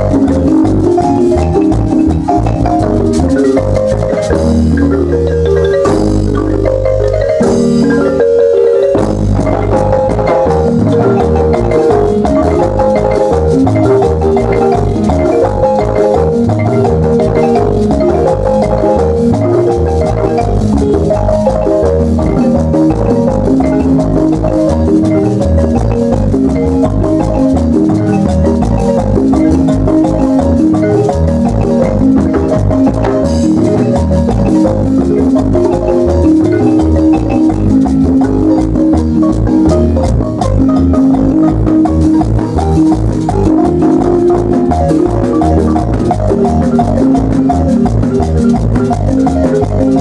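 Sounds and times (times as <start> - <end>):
marimba band playing: 0.0 - 50.0.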